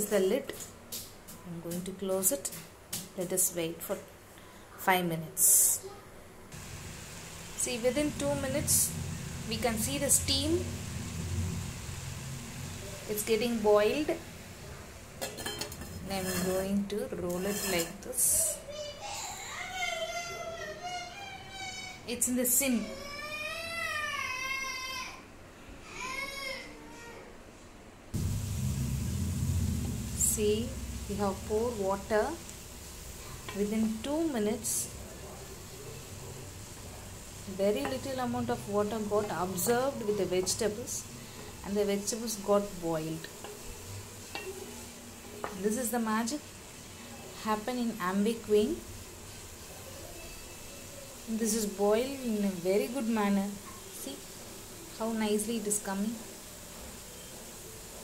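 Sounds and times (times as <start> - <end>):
beans simmering hiss: 5.4 - 25.2, 28.2 - 58.0
wooden spatula stirring: 15.2 - 18.1.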